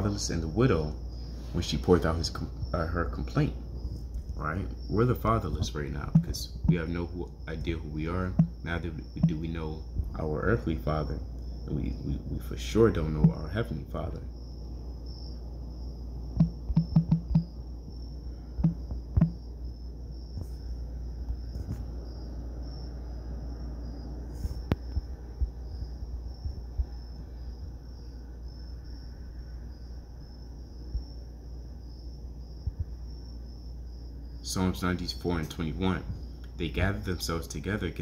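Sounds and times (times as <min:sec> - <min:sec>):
low hum: 0:00.0 - 0:38.0
fingers tapping touchscreen: 0:06.1 - 0:06.8, 0:08.4 - 0:08.6, 0:16.4 - 0:17.5, 0:18.6 - 0:19.4
high-pitched insect-like trill: 0:12.8 - 0:38.0.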